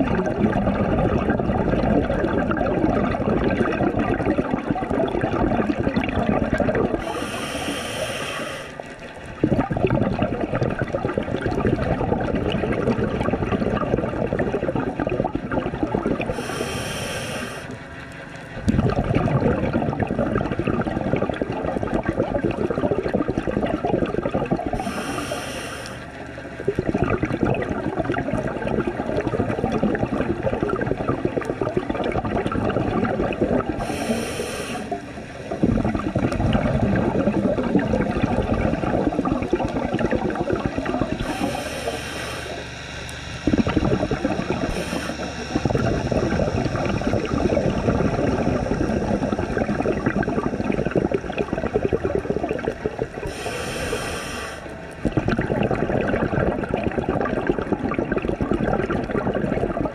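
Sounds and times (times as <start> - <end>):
rush of exhaled bubbles: 0.0 - 59.9
regulator inhale hiss: 6.9 - 9.0, 16.3 - 17.8, 24.8 - 26.2, 33.7 - 35.7, 40.2 - 54.8.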